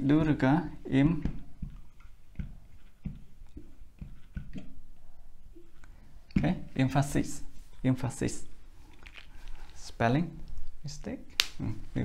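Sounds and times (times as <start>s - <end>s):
man speaking: 0.0s - 1.3s, 6.4s - 8.5s, 9.8s - 12.0s.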